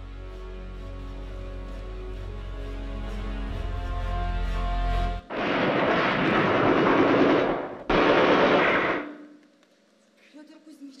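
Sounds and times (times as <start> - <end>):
music: 0.0 - 5.3
shelling blast sound effect: 5.3 - 9.3.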